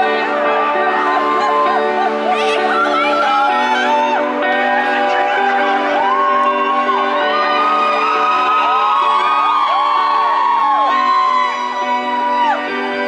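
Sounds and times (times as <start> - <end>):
crowd whooping and singing along: 0.0 - 13.0
live rock band music: 0.0 - 13.0.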